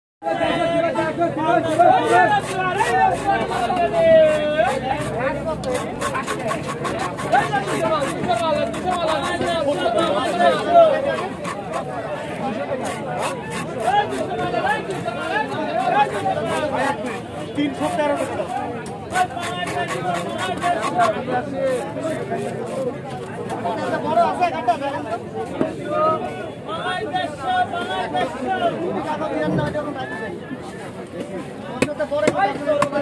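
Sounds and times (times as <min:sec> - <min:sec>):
people chattering: 0:00.2 - 0:33.0
people talking over one another: 0:00.2 - 0:33.0
knife scraping fish scales: 0:01.6 - 0:22.8.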